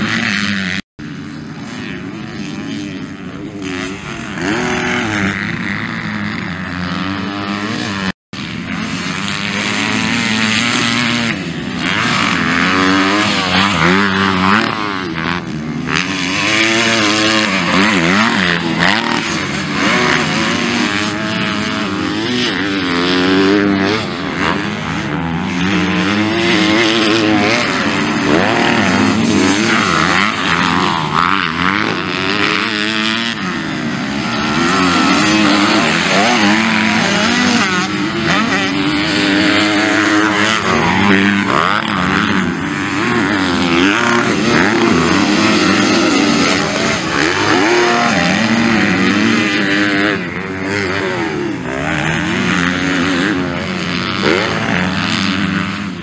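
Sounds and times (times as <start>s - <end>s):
motocross bike engines revving: 0.0s - 56.0s.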